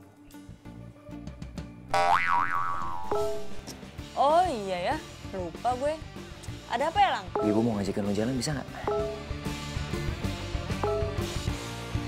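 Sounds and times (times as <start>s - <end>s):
cartoon boing: 1.9s - 3.6s.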